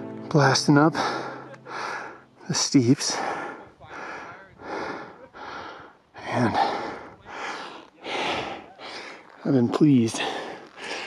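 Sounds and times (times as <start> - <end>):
person breathing hard: 1.0 - 2.4, 3.1 - 9.4, 10.1 - 11.0.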